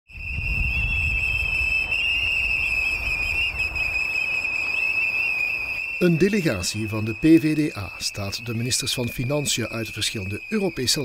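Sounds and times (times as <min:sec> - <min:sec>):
shrill whistles blowing: 0:00.1 - 0:11.0.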